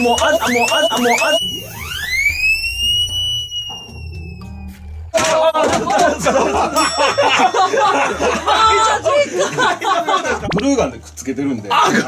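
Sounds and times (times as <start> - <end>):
high gliding whistle tone: 0.0 - 5.1.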